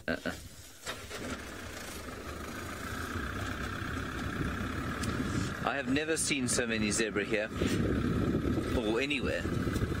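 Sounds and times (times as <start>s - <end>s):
vehicle engine rumble: 0.2s - 10.0s
high engine whine: 0.8s - 10.0s.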